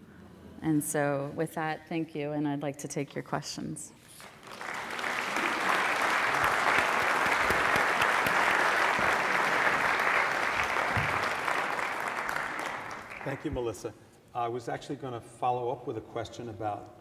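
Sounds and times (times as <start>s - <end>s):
audience applauding: 4.1s - 13.8s.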